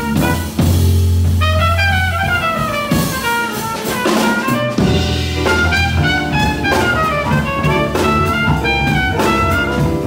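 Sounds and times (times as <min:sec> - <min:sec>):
big band jazz: 0:00.0 - 0:10.0.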